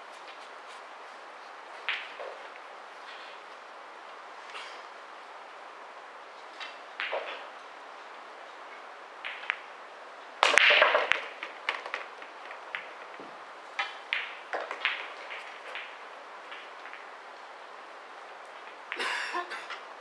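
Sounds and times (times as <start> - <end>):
billiard balls cracking on break: 1.8 - 3.3, 6.4 - 7.5, 8.7 - 9.7, 10.4 - 17.5
billiard balls clicking: 1.8 - 4.6, 6.4 - 9.8, 10.4 - 19.0
cue striking ball: 1.9 - 2.6, 9.2 - 9.7, 10.4 - 17.1.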